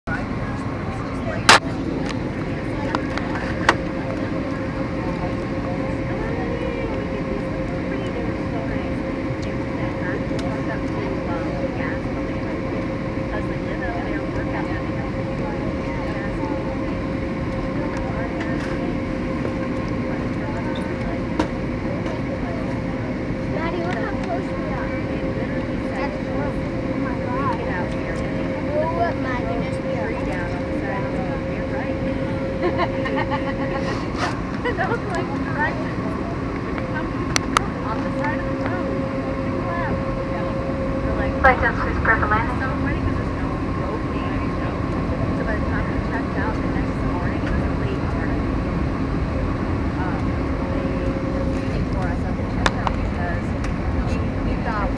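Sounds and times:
airliner cabin engine rush: 0:00.0 - 0:54.9
constant hum: 0:00.0 - 0:54.9.

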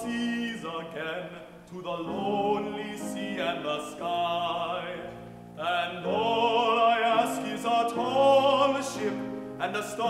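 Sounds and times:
baritone voice singing: 0:00.0 - 0:10.0
grand piano accompaniment: 0:00.0 - 0:10.0.

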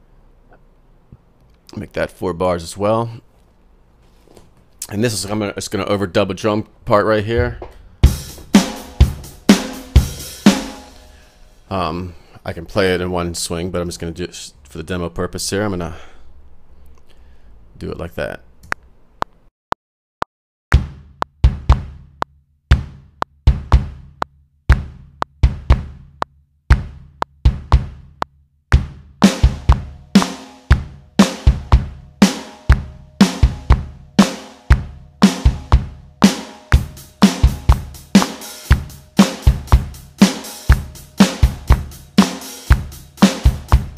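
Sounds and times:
kick drum strokes: 0:07.4 - 0:11.2, 0:20.7 - 0:43.9
snare drum strokes: 0:08.2 - 0:11.2, 0:29.2 - 0:43.9.

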